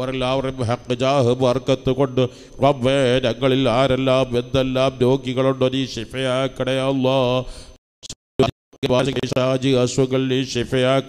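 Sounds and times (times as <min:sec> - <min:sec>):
man chanting a prayer: 0:00.0 - 0:07.6, 0:08.8 - 0:11.0.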